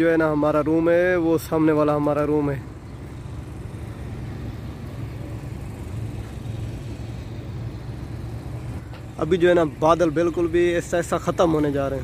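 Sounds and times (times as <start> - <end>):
low rumble of distant engines: 0.0 - 12.0.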